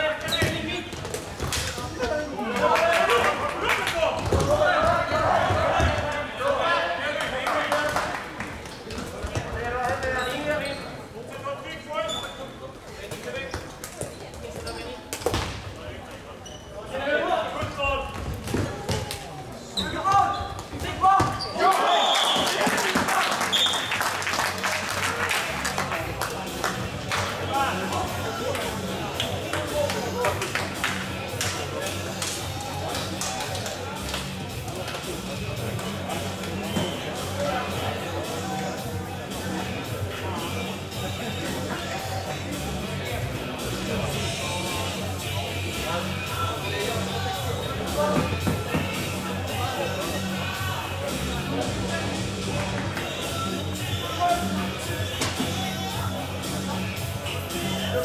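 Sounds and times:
music playing: 22.2 - 58.0.

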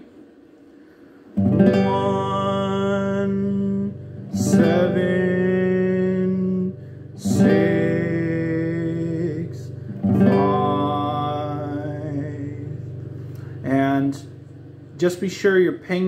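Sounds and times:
classical guitar strummed: 1.4 - 15.3.

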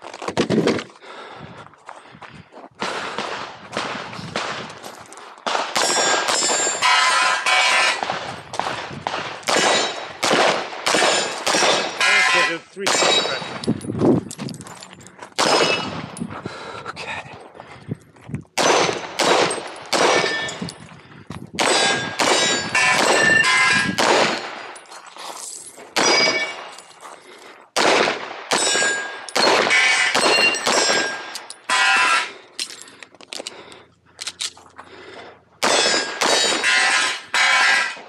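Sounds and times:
handgun shots: 5.5 - 13.6, 15.4 - 16.0, 18.6 - 20.6, 21.6 - 24.6, 26.0 - 26.7, 35.6 - 38.0
metallic ringing of steel targets: 5.8 - 8.1, 9.5 - 10.3, 10.9 - 13.8, 15.4 - 16.2, 18.6 - 20.9, 21.6 - 24.9, 26.0 - 26.9, 28.5 - 32.4, 35.6 - 38.0.

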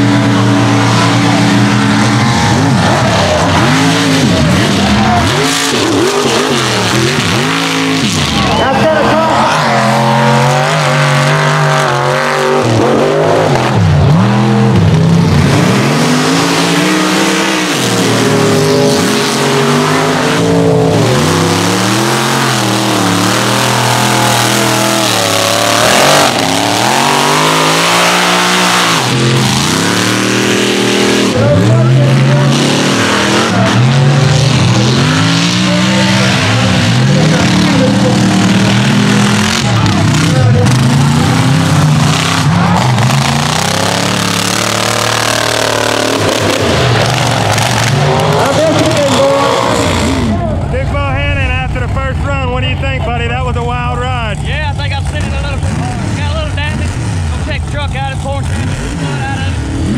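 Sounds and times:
truck engines revving: 0.0 - 59.9.

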